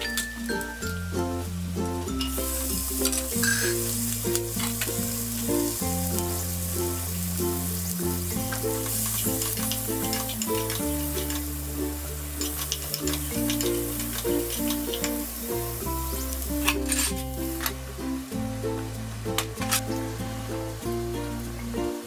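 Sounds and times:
background music with bass line: 0.0 - 22.0
food sizzling in hot oil: 0.0 - 22.0.

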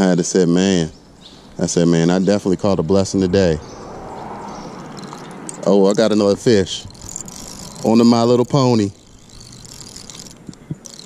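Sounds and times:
fishing reel gears whirring: 4.6 - 11.0.

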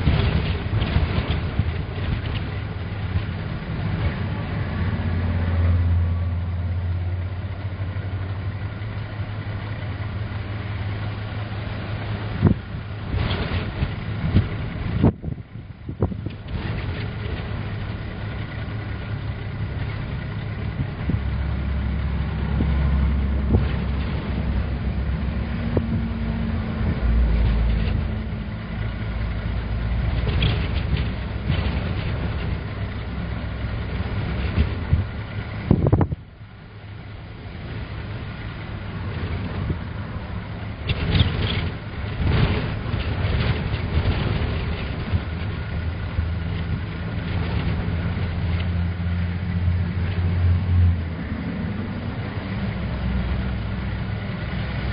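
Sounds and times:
gusty wind rumbling on microphone: 0.0 - 54.9
vehicle noise: 0.0 - 54.9.

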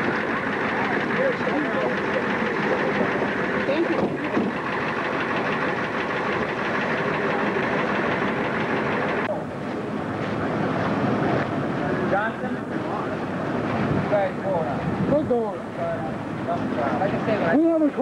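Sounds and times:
faint voices: 0.0 - 18.0
vehicle engine rumbling: 0.0 - 18.0.

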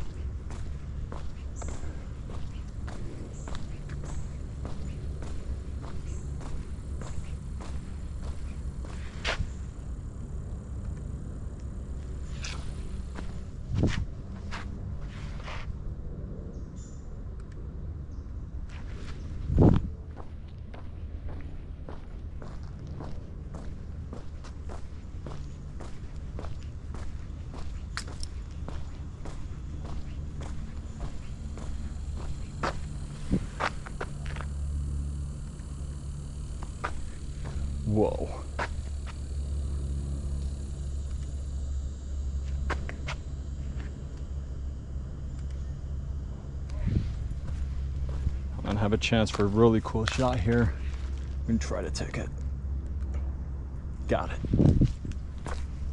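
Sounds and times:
footsteps on paved path: 0.0 - 15.7, 18.6 - 41.6, 42.4 - 44.4, 46.6 - 55.9
low steady rumble: 0.0 - 55.9.

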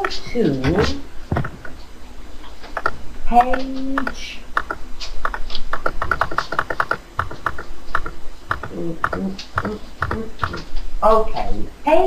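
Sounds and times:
keyboard typing: 0.0 - 1.8, 2.6 - 10.8.

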